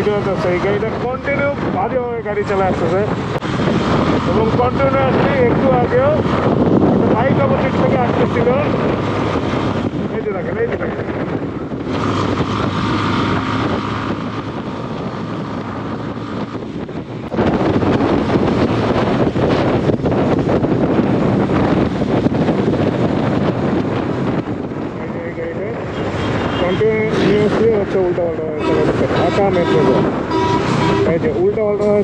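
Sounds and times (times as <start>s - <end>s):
person speaking: 0.0s - 3.2s, 26.6s - 30.2s, 30.9s - 32.0s
motorcycle engine: 0.0s - 25.1s
wind on microphone: 0.0s - 32.0s.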